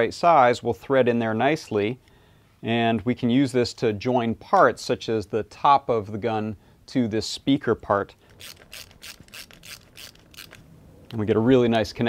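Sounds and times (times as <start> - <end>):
screwdriver turning screw clicks: 8.3 - 10.6.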